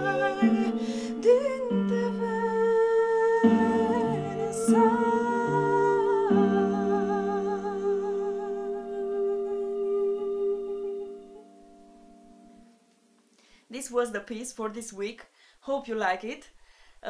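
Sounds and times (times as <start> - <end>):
woman singing wordless notes: 0.0 - 12.7
backing track of sustained chords: 0.0 - 13.3.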